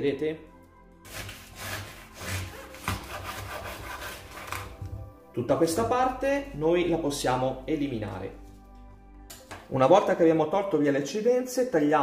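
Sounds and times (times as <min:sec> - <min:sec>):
knife sawing through artichoke: 0:01.1 - 0:04.8.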